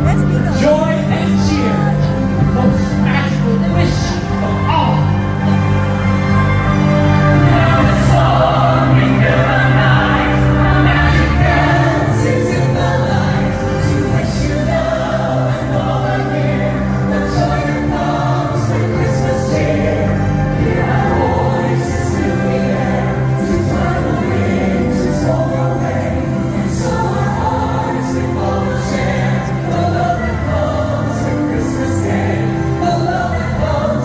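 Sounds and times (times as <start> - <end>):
instrumental backing music: 0.0 - 34.0
choir singing held notes: 3.7 - 34.0.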